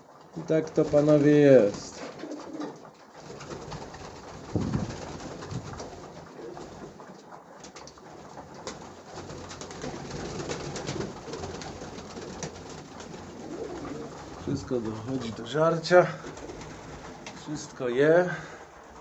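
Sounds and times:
pigeons cooing: 0.0 - 19.0
wings flapping and clattering: 0.0 - 19.0.

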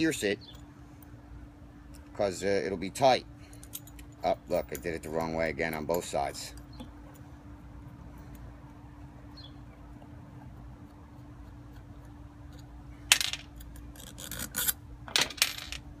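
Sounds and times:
metal ring scraping and rubbing: 13.5 - 14.8.

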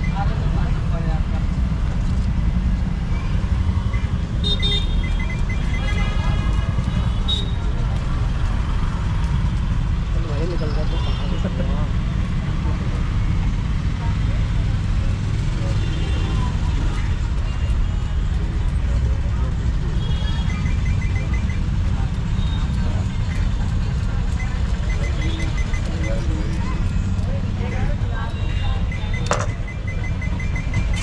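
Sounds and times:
street traffic rumble: 0.0 - 31.0
quick beeps: 3.1 - 6.2, 20.3 - 23.6, 24.3 - 31.0.

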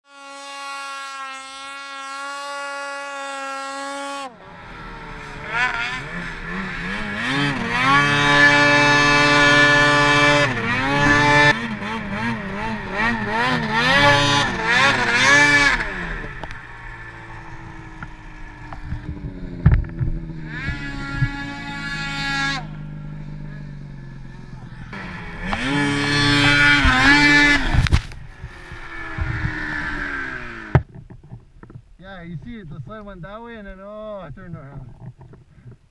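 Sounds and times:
snowmobile engines revving: 0.1 - 30.8.

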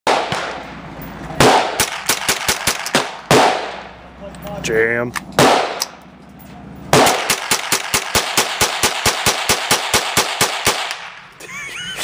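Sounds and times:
rifle shots echoing: 0.1 - 0.8, 1.4 - 4.0, 5.4 - 6.0, 6.9 - 11.3.

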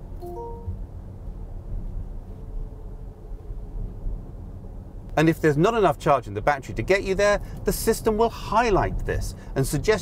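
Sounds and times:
road and tyre rumble in car: 0.0 - 10.0.

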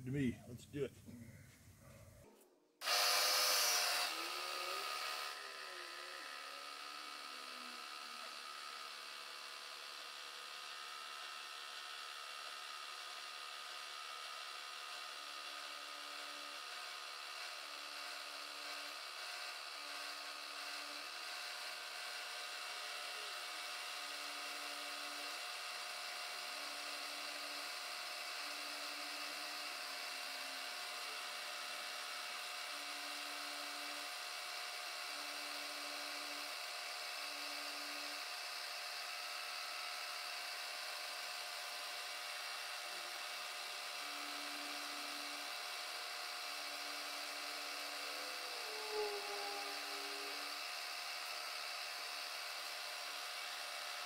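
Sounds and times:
milling machine cutting metal: 2.8 - 54.0.

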